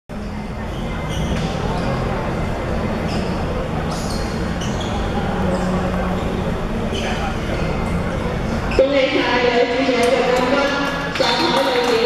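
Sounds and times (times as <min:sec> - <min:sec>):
voices echoing in sports hall: 0:00.1 - 0:12.0.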